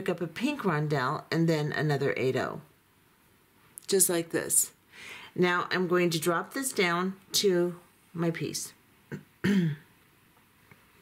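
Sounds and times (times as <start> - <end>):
woman clearing her throat: 9.1 - 9.9.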